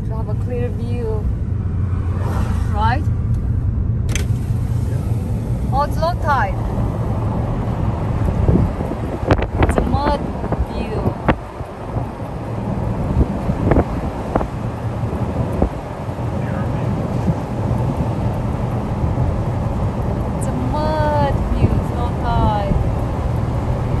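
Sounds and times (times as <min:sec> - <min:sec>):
car engine and road rumble: 0:00.0 - 0:24.0
wind noise: 0:00.0 - 0:24.0.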